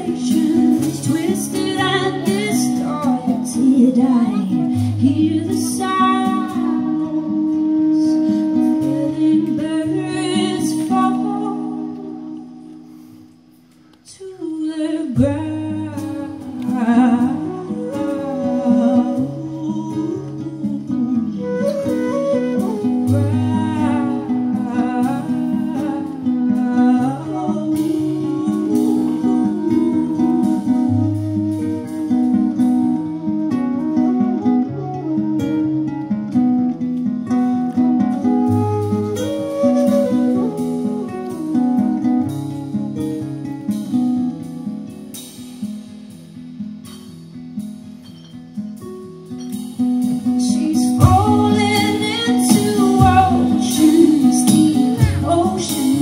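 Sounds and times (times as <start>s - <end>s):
woman singing: 0.0s - 12.8s, 14.0s - 35.9s, 37.2s - 44.0s, 50.0s - 56.0s
classical guitar: 0.0s - 56.0s
wooden flute long notes: 5.2s - 12.8s, 16.6s - 36.7s, 37.3s - 43.4s.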